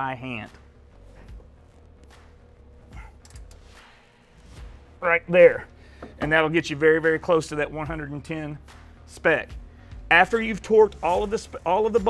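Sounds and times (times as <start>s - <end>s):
ratchet wrench clicking: 3.2s - 3.6s.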